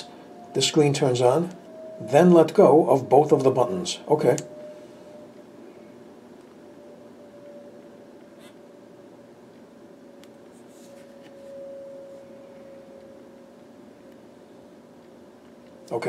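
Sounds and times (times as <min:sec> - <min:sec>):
steady faint hum: 0:00.0 - 0:16.0.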